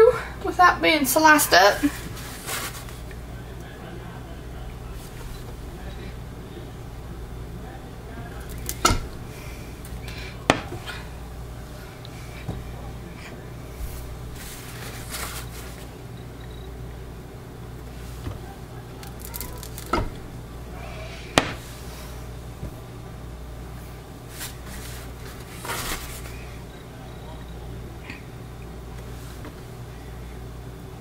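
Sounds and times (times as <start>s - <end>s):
steady low hum: 0.0s - 31.0s
soap scraping and rubbing: 19.0s - 20.1s.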